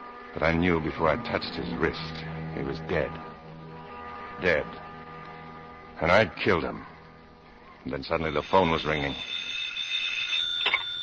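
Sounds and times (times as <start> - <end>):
telephone ringing: 8.1 - 11.0.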